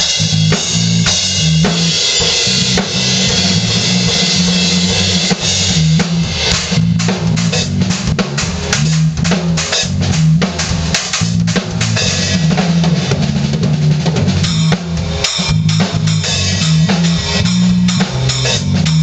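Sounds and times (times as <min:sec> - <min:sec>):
drum kit funk groove: 0:00.0 - 0:19.0
electric bass line: 0:00.0 - 0:19.0.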